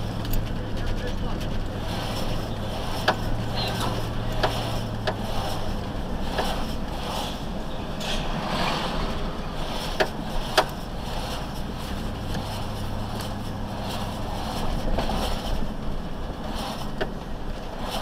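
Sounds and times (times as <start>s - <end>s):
vehicle engine hum and road noise: 0.0s - 18.0s.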